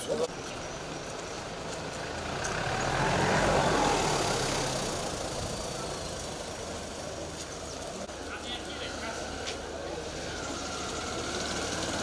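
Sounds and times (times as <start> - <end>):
vehicle passing by: 1.8 - 12.0.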